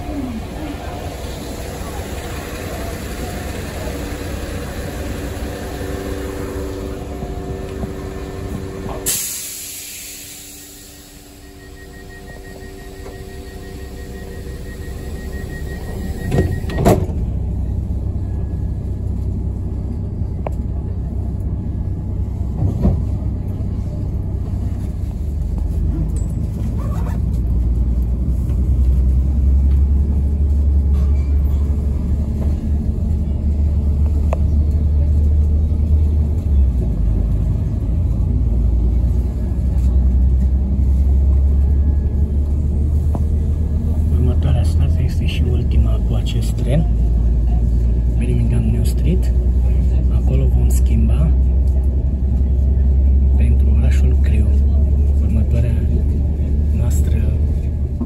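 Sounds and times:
train rumble: 0:00.0 - 0:58.0.

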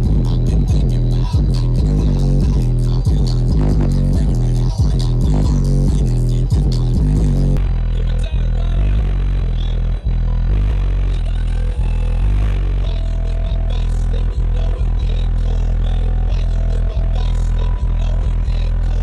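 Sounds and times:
bass-heavy music from car stereo: 0:00.0 - 0:19.0.

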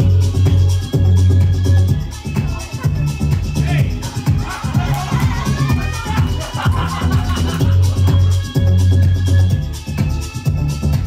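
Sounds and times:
dance music with pulsing bass: 0:00.0 - 0:11.0.

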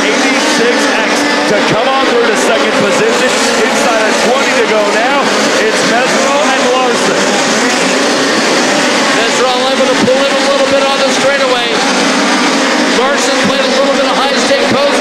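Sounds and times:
race car engines revving: 0:00.0 - 0:15.0.

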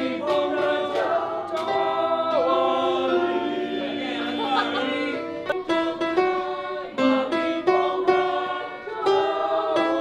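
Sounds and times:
plucked instrumental melody: 0:00.0 - 0:10.0.

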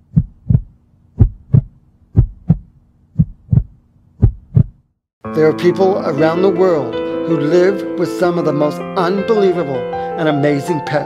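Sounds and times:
faint steady hum: 0:00.0 - 0:04.8
heartbeat lub-dub thumps: 0:00.0 - 0:04.9.

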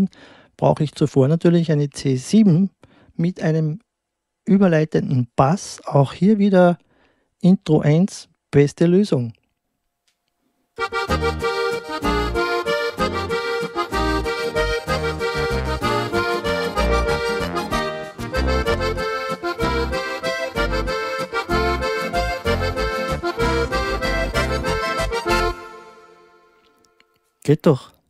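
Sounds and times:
keyboard waltz with accordion voice: 0:10.8 - 0:27.0.

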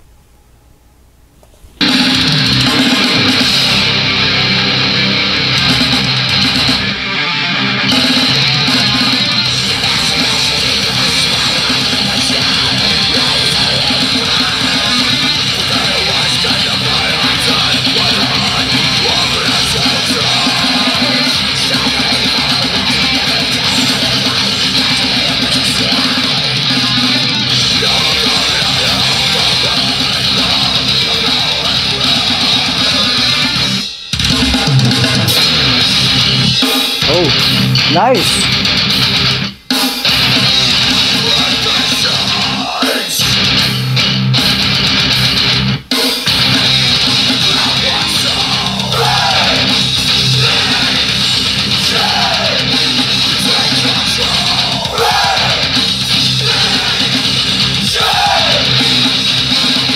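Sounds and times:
drum kit: 0:01.8 - 0:07.1, 0:07.8 - 0:59.9
distorted electric guitars: 0:01.8 - 0:59.9.

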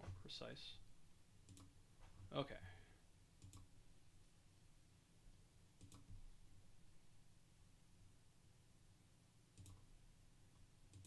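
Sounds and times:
computer mouse clicks: 0:01.5 - 0:01.7, 0:03.4 - 0:03.7, 0:05.8 - 0:06.2, 0:09.6 - 0:09.8.

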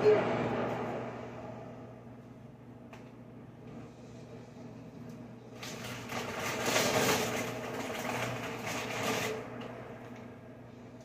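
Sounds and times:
steady low hum: 0:00.0 - 0:11.0
meat packaging rustling: 0:05.6 - 0:09.4.

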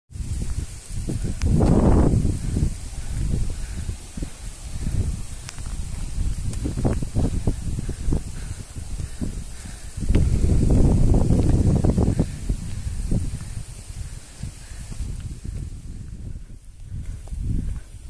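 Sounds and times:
wind buffeting microphone: 0:00.1 - 0:18.0.

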